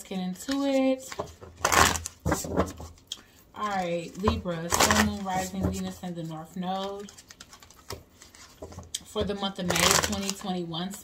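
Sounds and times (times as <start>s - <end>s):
cards being shuffled: 6.7s - 8.9s, 9.6s - 10.5s.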